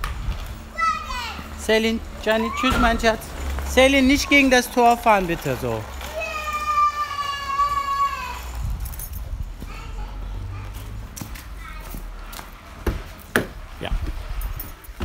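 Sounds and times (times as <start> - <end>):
child's long call: 6.1 - 8.6.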